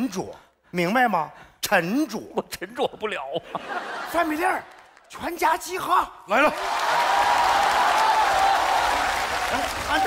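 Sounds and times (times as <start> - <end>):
audience applauding: 6.4 - 10.0
long drawn-out shout: 6.6 - 10.0.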